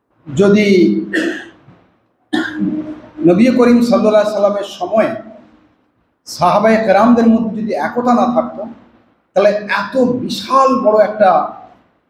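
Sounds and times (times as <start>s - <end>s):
man coughing: 1.1s - 3.0s.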